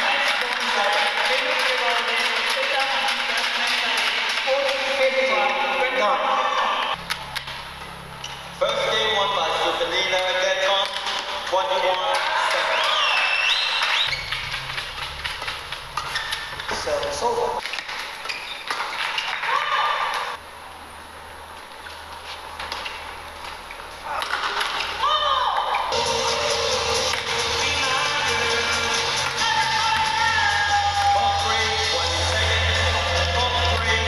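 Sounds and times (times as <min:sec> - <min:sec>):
crowd noise: 0:00.0 - 0:17.6, 0:23.9 - 0:34.0
shoes squeaking on court: 0:06.9 - 0:08.6, 0:12.7 - 0:20.4, 0:21.6 - 0:25.0.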